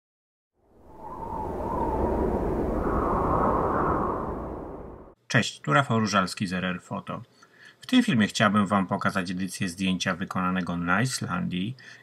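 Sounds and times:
deep rumble: 0:00.8 - 0:05.2.

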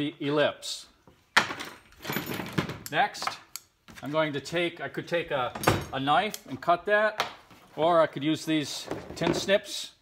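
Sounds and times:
metal tools clattering on workbench: 0:01.4 - 0:03.4, 0:05.5 - 0:06.0.

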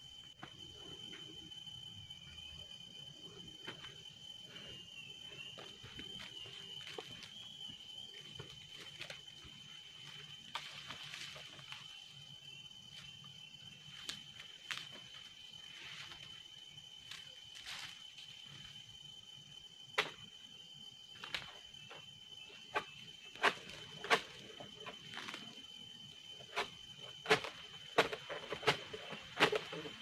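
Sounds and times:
high-pitched insect drone: 0:00.0 - 0:27.9.

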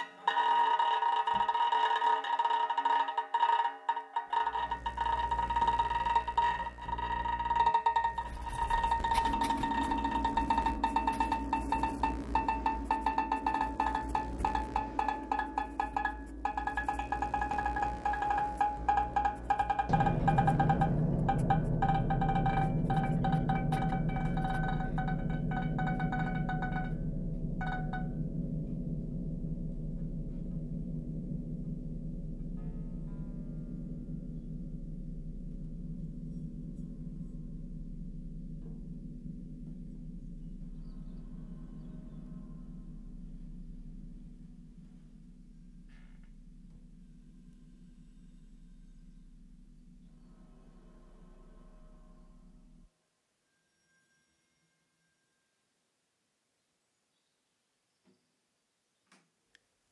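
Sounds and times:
dense crackling clicks: 0:00.0 - 0:50.0
high ringing bowed tones: 0:00.0 - 0:55.8
low electronic drone: 0:04.3 - 0:52.9.

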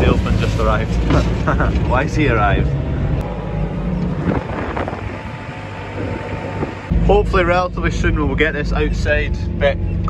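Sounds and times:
diesel engine running: 0:00.0 - 0:10.0.

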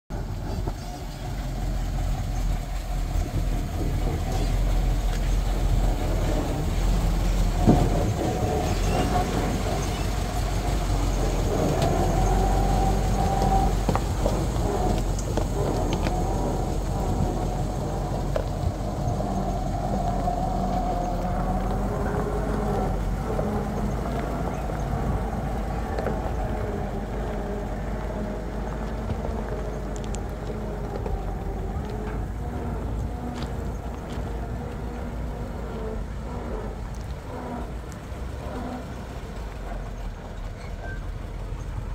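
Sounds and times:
low engine rumble: 0:00.0 - 0:41.9.

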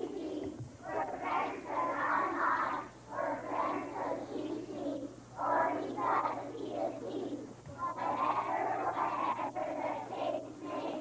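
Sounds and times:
children singing together: 0:00.0 - 0:11.0.

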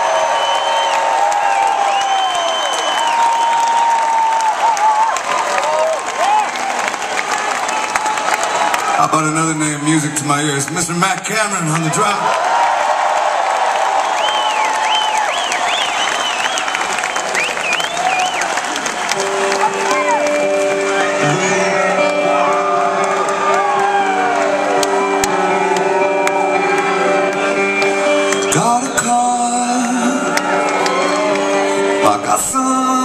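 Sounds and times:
crowd cheering and whistling: 0:00.0 - 0:10.6, 0:11.4 - 0:33.0
electric guitar ringing chords: 0:19.1 - 0:33.0.

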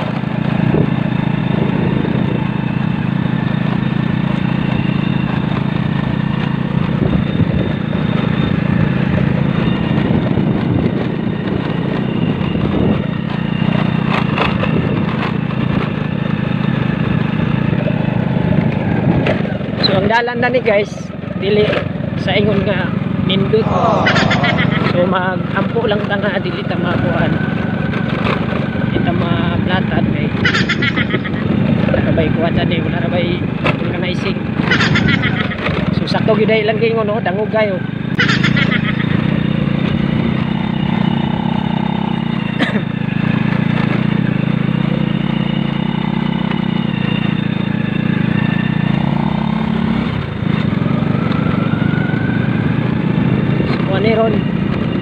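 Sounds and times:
person talking: 0:23.3 - 0:25.5.

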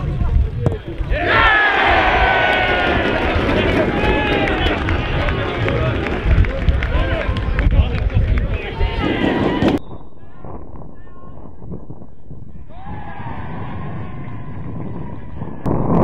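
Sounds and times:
low rumble: 0:00.0 - 0:16.0
crowd cheering and shouting: 0:01.0 - 0:09.8, 0:12.7 - 0:15.7.

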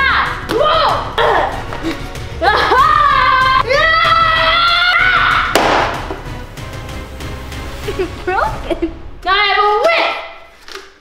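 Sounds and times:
child yelling: 0:00.0 - 0:01.6, 0:02.4 - 0:05.6
background music: 0:00.0 - 0:11.0.

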